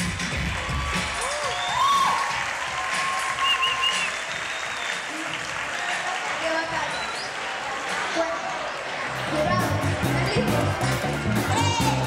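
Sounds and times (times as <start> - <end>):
dance music with heavy beat: 0.0 - 4.4, 9.2 - 12.0
audience applauding: 0.0 - 9.3.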